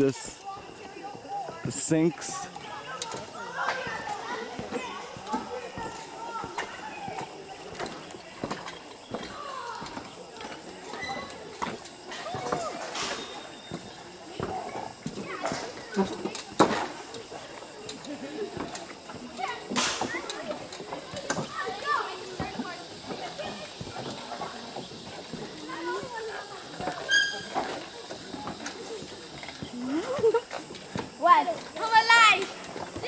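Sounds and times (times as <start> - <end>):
adults and children talking: 0.0 - 33.0.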